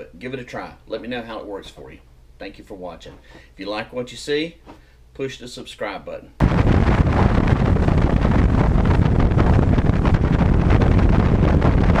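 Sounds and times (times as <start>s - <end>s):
wind buffeting microphone: 6.4s - 12.0s.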